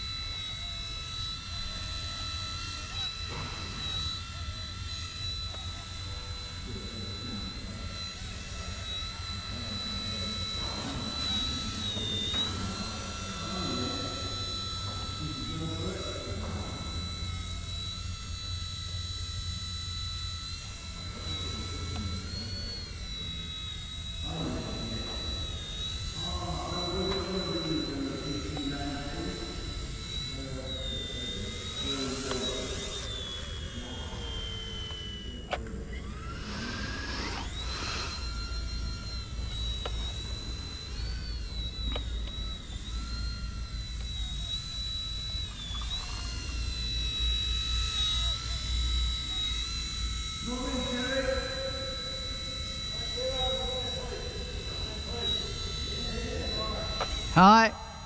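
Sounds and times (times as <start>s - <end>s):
toy helicopter rotor whine: 0.0s - 58.0s.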